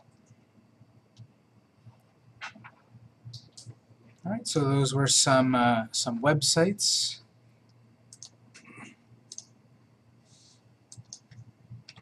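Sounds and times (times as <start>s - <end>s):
low steady hum: 0.0s - 12.0s
computer mouse clicks: 8.1s - 8.4s, 9.3s - 9.5s, 10.9s - 12.0s.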